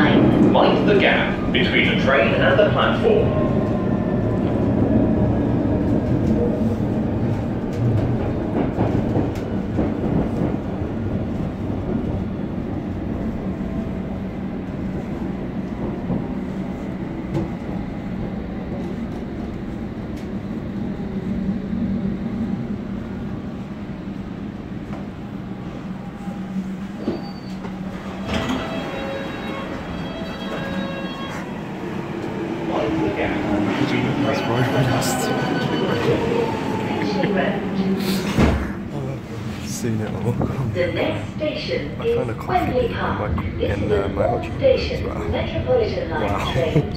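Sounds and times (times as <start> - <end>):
train wheels rumbling: 0.0 - 46.9.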